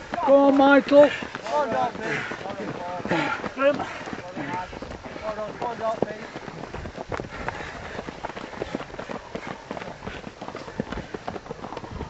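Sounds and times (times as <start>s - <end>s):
running footsteps on dirt path: 0.0s - 12.0s.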